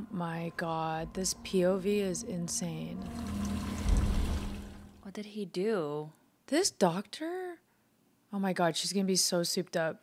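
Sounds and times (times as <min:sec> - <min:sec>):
steady low tone: 0:00.0 - 0:05.1.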